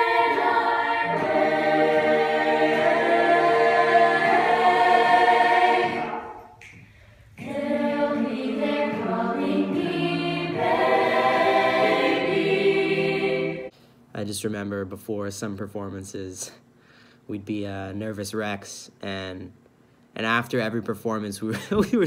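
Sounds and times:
young voices singing a cappella: 0.0 - 6.6, 7.3 - 13.7.

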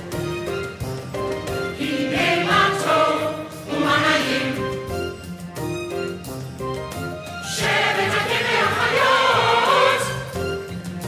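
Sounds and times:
choir singing: 1.7 - 4.9, 7.4 - 10.5.

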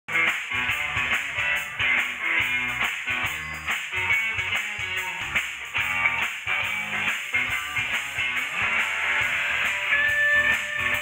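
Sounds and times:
live rock band playing: 0.1 - 11.0.

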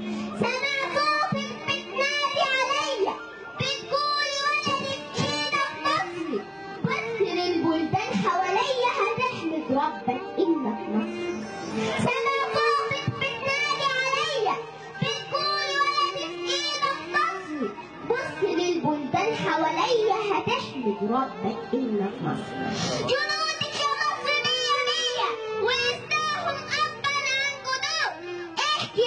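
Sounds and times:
background music: 0.0 - 29.0
girl singing into a microphone: 0.0 - 29.0.

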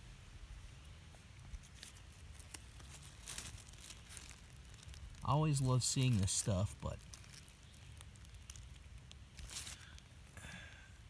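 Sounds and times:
dry leaves rustling: 0.8 - 10.7.

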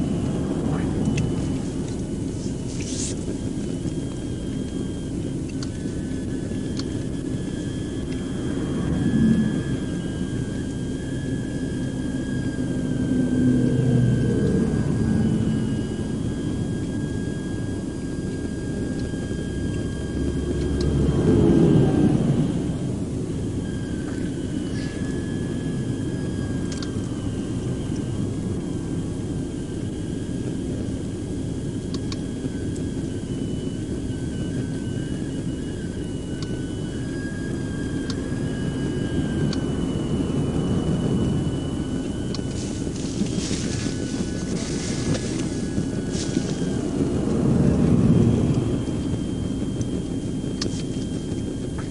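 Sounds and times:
vehicles passing on highway: 0.0 - 3.9, 8.0 - 10.4, 12.5 - 16.3, 20.1 - 23.1, 39.0 - 49.2
faint high whine: 0.0 - 51.9
vehicle engine rumble: 0.0 - 51.9.

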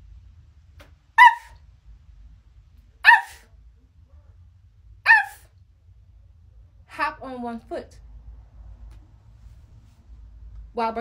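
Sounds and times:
woman imitating dog barks: 1.2 - 1.6, 3.0 - 3.5, 5.1 - 5.5.

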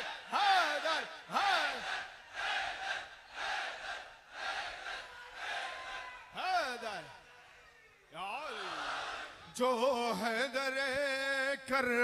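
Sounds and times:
crowd of men chanting: 0.0 - 6.1, 8.4 - 10.6.

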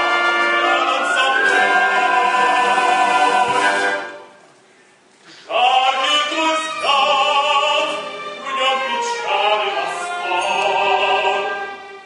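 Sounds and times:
choir singing long held notes: 0.0 - 4.2.

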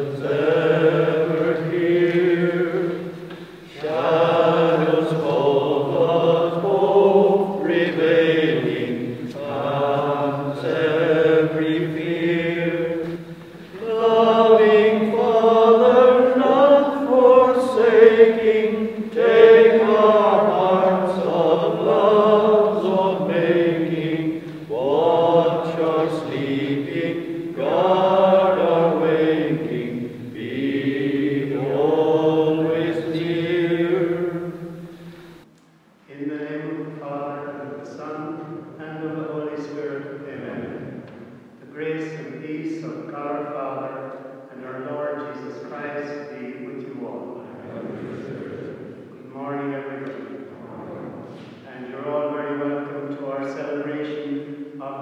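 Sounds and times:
voices singing a hymn: 0.0 - 35.4, 36.1 - 55.0.

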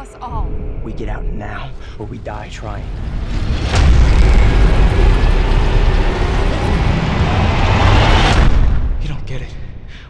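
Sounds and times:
deep bass rumble: 0.0 - 10.0
film trailer score: 0.0 - 10.0
sharp hit: 1.6 - 9.9.

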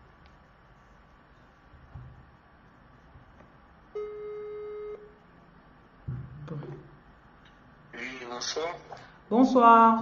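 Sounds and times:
phone ringback tone: 4.0 - 5.1.

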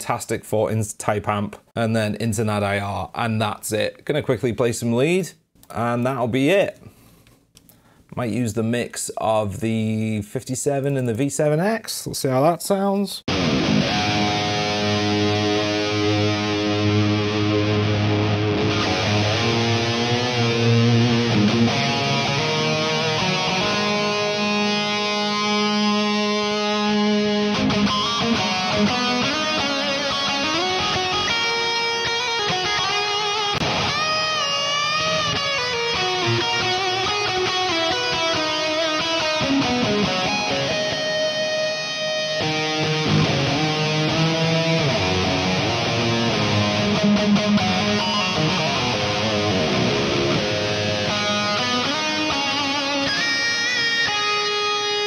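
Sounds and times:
distorted electric guitar lead: 13.3 - 55.0.

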